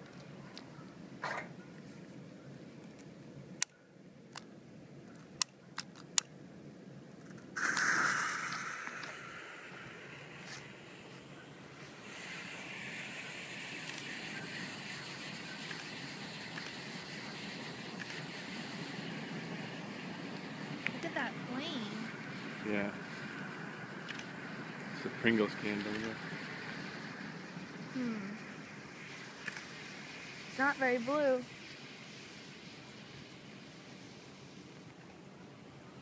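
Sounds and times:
smoke bomb igniting whoosh: 7.6 - 34.8
smoke bomb hissing: 7.6 - 35.0.

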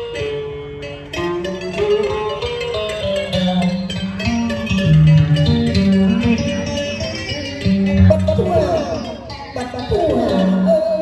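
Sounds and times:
plucked string melody: 0.0 - 11.0
bass notes: 3.7 - 9.2.

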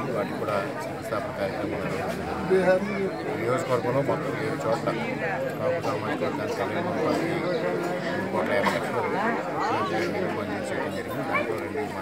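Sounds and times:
men chattering: 0.0 - 12.0.

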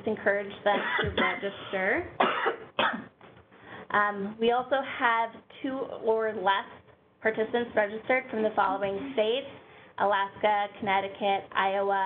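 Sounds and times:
person coughing: 0.7 - 3.2.

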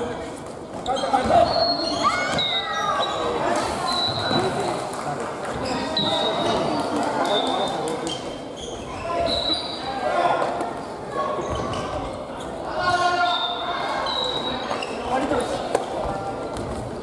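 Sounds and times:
voices echoing: 0.0 - 17.0
sneakers squeaking on wooden floor: 0.7 - 4.8, 5.5 - 10.0, 11.3 - 16.4.

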